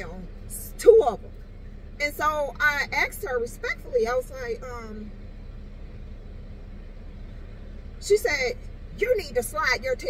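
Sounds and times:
car cabin hum and rumble: 0:00.0 - 0:10.0
faint constant tone: 0:00.0 - 0:10.0.

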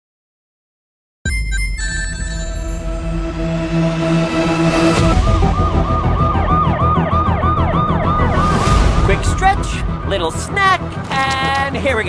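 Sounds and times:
siren yelping: 0:04.6 - 0:09.3.

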